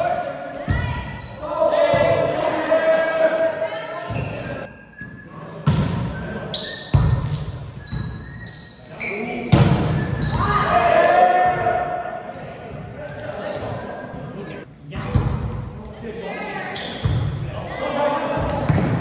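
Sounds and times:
volleyball hits echoing: 9.5s - 11.8s
players shouting: 10.2s - 12.2s.

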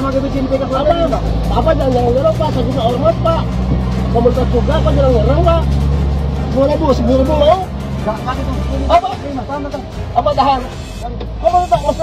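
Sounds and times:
men arguing loudly: 0.0s - 12.0s
truck engine idling: 0.0s - 12.0s.

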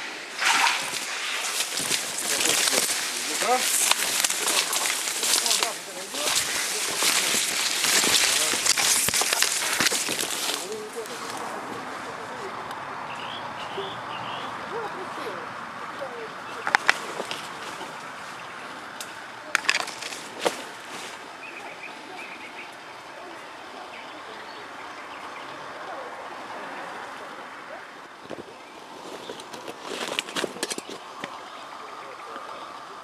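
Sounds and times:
steady outdoor hiss: 0.0s - 33.0s
twigs cracking and clicking: 0.4s - 11.6s, 16.6s - 18.2s, 18.9s - 21.2s, 28.3s - 31.5s
faint bird chirps: 13.1s - 14.5s, 21.4s - 26.0s.

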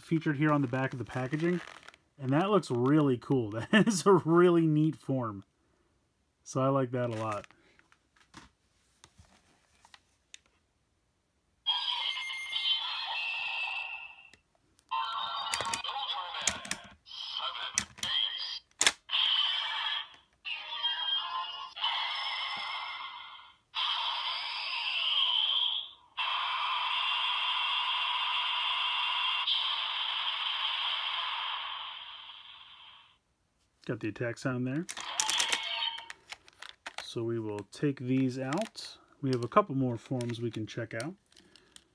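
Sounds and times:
toy recorded voice calls: 11.7s - 14.3s, 14.9s - 33.0s, 35.0s - 36.2s
toy electronic music: 35.0s - 36.1s.

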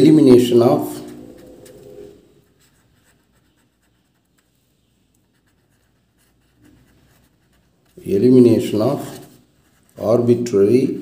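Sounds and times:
marker pen scratching on paper: 0.1s - 10.5s.

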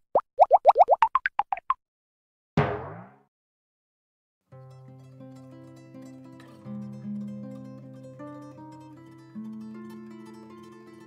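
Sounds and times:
cartoon popping blips rising in pitch: 0.1s - 1.8s.

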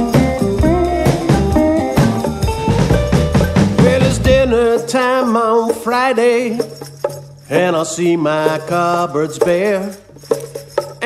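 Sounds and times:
instrumental accompaniment: 0.0s - 11.0s
person singing with vibrato: 3.6s - 10.1s.

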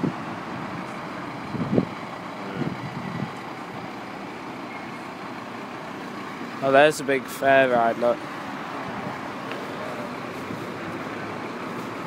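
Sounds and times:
fire engines running: 0.0s - 12.0s.

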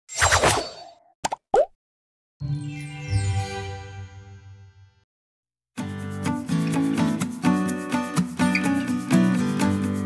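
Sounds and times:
cartoon pops: 0.2s - 1.8s.

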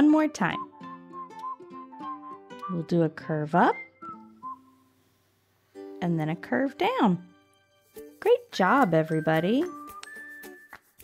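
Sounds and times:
soft music with plucked strings: 0.0s - 5.0s, 5.6s - 11.0s
whistled tune: 0.5s - 5.0s, 8.8s - 11.0s.

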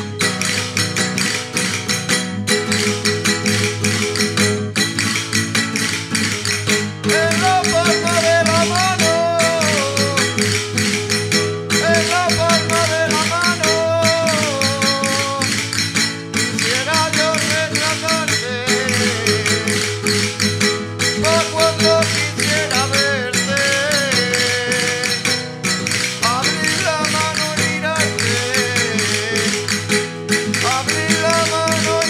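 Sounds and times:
clicking percussion beat: 0.0s - 32.0s
strummed acoustic guitar: 0.0s - 32.0s
person singing: 7.0s - 10.8s, 11.7s - 20.2s, 21.2s - 32.0s.

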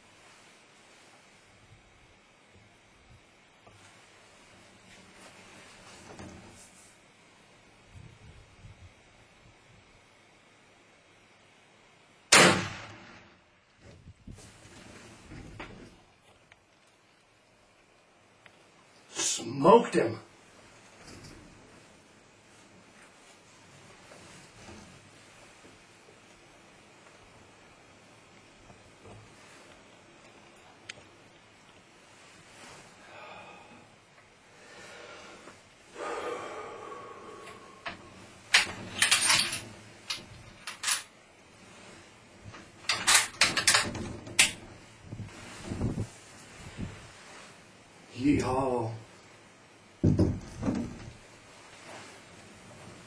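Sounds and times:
gunshot crack: 12.3s - 13.3s
man gasping breaths: 33.0s - 38.2s.

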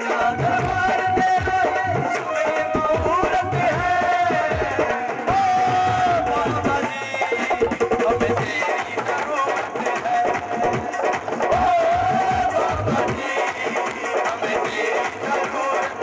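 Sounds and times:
devotional music through pa system: 0.0s - 16.0s
hand drums beating: 0.0s - 16.0s.

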